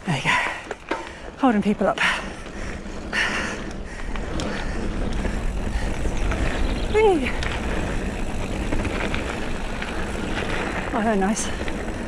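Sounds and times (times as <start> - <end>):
bike clicks and rattles: 0.0 - 12.0
bike tyre and drivetrain noise: 0.0 - 12.0
wind rumble on microphone: 1.3 - 12.0.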